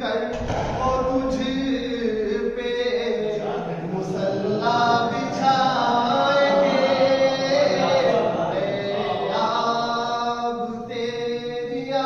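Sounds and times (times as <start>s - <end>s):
man chanting devotional poem: 0.0s - 12.0s.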